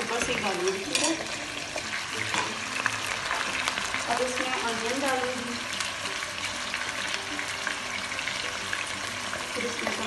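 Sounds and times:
meat sizzling in hot oil: 0.0s - 10.0s.

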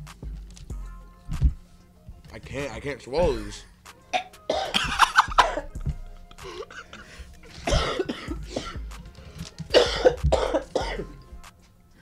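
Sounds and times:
person coughing: 4.2s - 8.8s, 9.7s - 11.2s.

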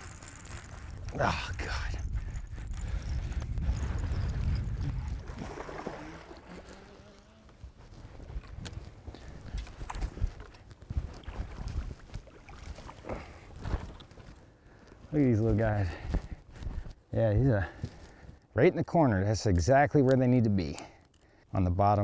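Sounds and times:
wind rumble on microphone: 0.8s - 6.5s, 7.6s - 12.8s.

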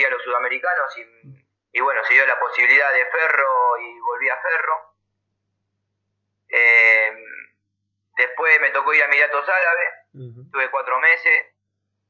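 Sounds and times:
man saying ehh over phone: 10.2s - 10.5s.

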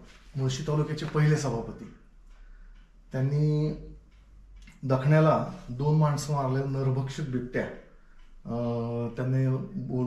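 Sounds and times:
man speaking: 0.0s - 2.0s, 3.1s - 4.0s, 4.7s - 7.9s, 8.5s - 10.0s.

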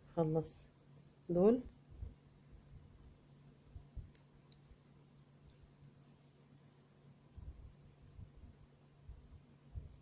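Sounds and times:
knitting needles clicking: 5.4s - 5.7s.

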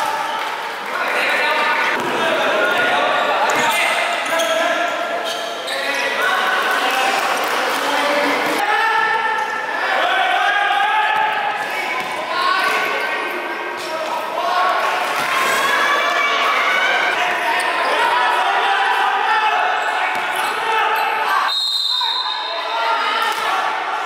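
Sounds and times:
echoing voices: 0.0s - 24.0s
referee's whistle blast: 21.4s - 22.6s.

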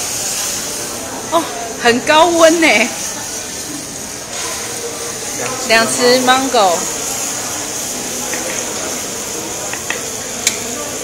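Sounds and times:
fruit sizzling in a hot pan: 0.0s - 11.0s.

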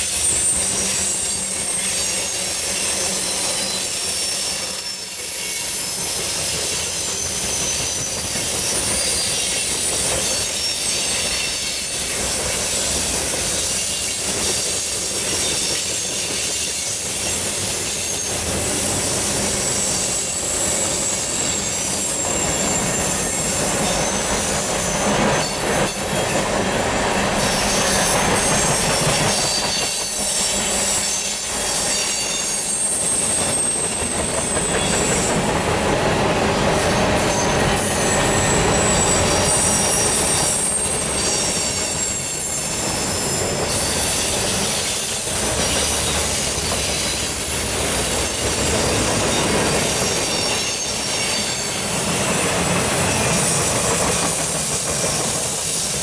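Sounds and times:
freight train rumbling past: 0.0s - 56.0s
wheels squealing: 0.0s - 56.0s.

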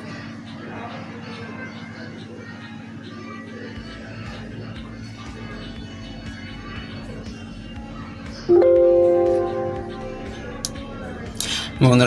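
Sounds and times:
low background noise: 0.0s - 11.8s
breath: 11.4s - 11.8s.

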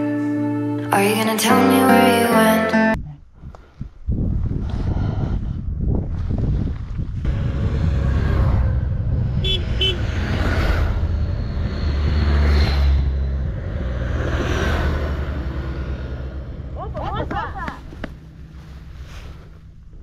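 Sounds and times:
motorcycles riding past: 7.3s - 19.7s.

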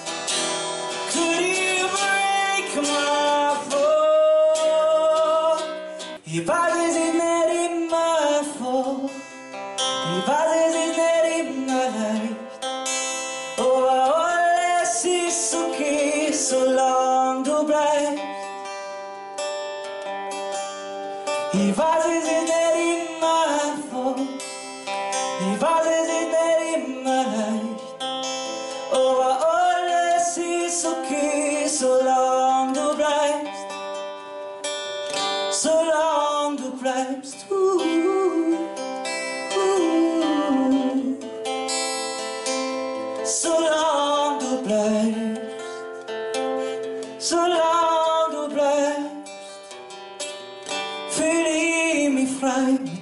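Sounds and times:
person singing: 0.0s - 18.7s, 21.1s - 34.4s, 35.0s - 53.0s
acoustic guitar: 0.0s - 53.0s.

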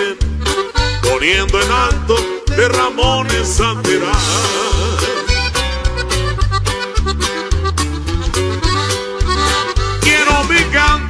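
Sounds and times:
accordion melody: 0.0s - 11.0s
bass notes: 0.0s - 11.0s
percussion beat: 0.1s - 11.0s.

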